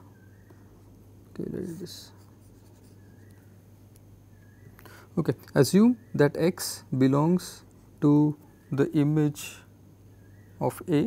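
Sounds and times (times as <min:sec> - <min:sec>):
low steady hum: 0:00.0 - 0:11.0
stylus scratching on tablet screen: 0:01.6 - 0:03.3.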